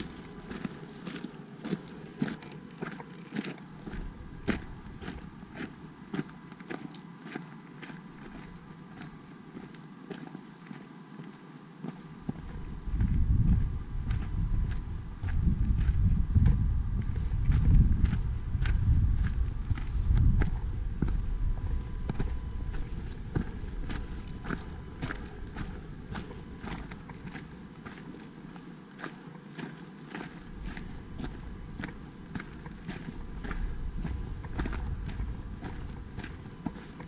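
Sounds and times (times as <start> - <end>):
wind buffeting microphone: 0.0 - 0.7, 12.2 - 27.6, 30.4 - 37.0
footsteps on rocky dirt trail: 0.0 - 37.0.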